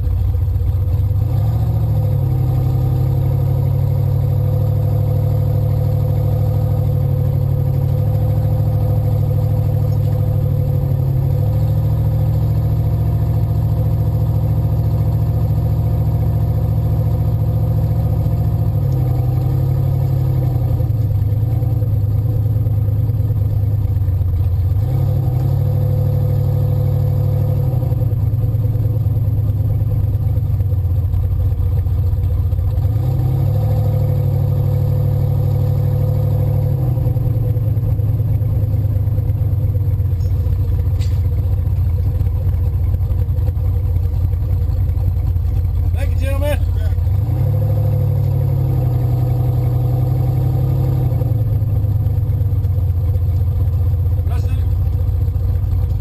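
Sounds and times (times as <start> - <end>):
car engine heard from cabin: 0.0 - 56.0.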